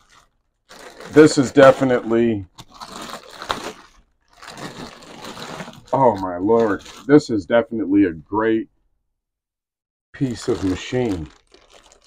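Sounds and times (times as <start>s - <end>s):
plastic wrapping crinkling: 0.0s - 7.3s, 10.2s - 12.0s.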